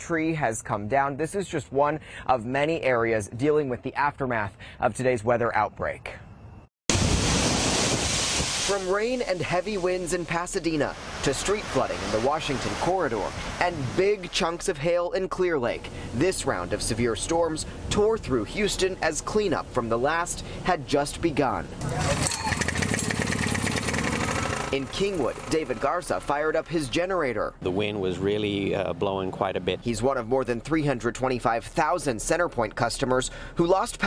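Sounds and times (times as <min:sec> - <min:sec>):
heavy rain: 0:06.9 - 0:14.3
generator engine pull-started: 0:21.8 - 0:25.9.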